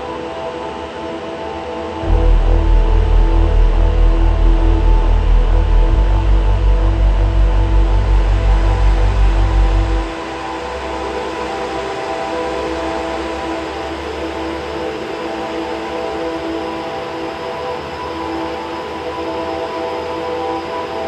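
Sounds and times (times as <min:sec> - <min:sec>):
ambient drone music: 0:00.0 - 0:21.0.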